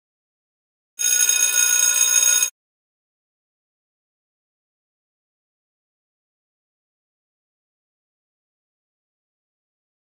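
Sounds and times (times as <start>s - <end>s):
electronic timer ringing tone: 1.0s - 2.5s.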